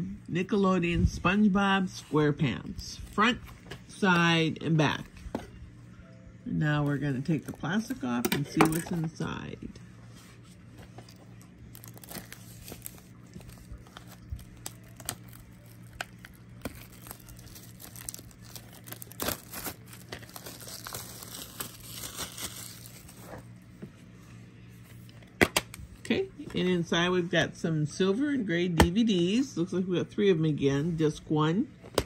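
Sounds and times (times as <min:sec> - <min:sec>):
plastic wrap crinkling and tearing: 0:10.9 - 0:23.5.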